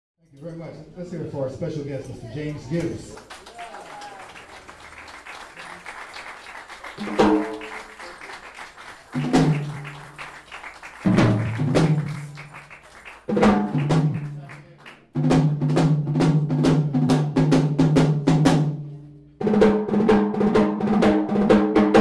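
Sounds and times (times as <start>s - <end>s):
drum hits: 7.0s - 7.7s, 9.2s - 9.8s, 11.0s - 12.4s, 13.3s - 14.4s, 15.2s - 18.7s.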